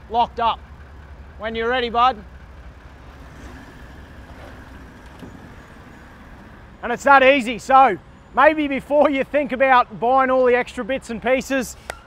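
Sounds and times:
truck engine running at low revs: 0:00.0 - 0:12.0.

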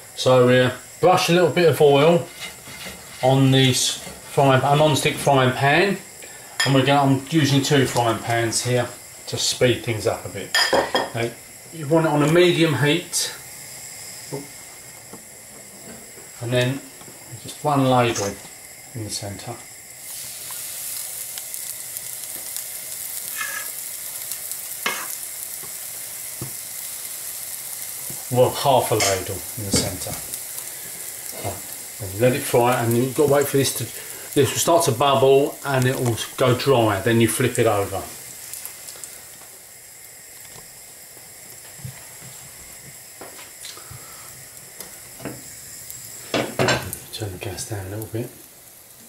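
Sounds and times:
batter sizzling in a frying pan: 0:00.0 - 0:49.0
small ticks of bubbling batter: 0:38.5 - 0:45.2.

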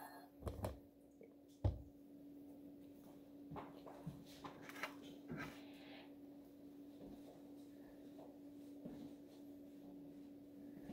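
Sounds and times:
steady low hum: 0:00.0 - 0:10.9
soft footsteps: 0:06.5 - 0:10.9.

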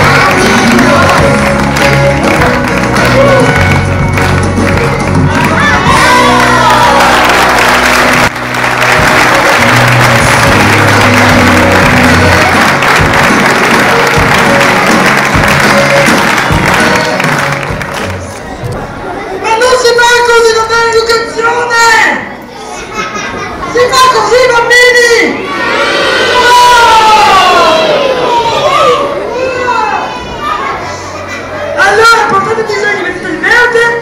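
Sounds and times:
loud music with bass line: 0:00.0 - 0:18.3.

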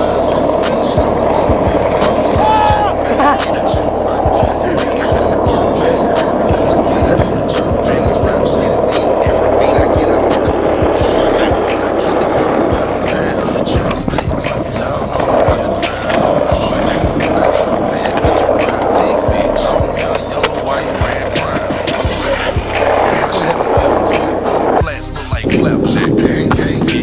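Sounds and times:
background music with steady beat: 0:00.0 - 0:27.0
skateboard clacks: 0:00.0 - 0:27.0
skateboard wheels rolling on asphalt: 0:00.0 - 0:27.0.

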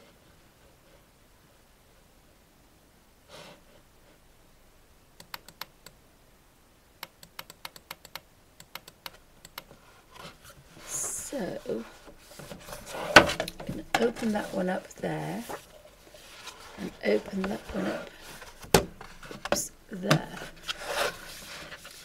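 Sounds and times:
computer keyboard clicks: 0:07.0 - 0:09.7.

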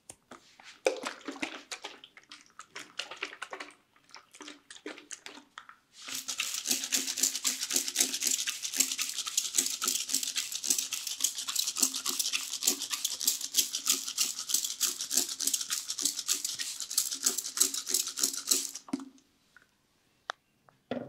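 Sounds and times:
spray bottle hissing: 0:06.0 - 0:18.8.

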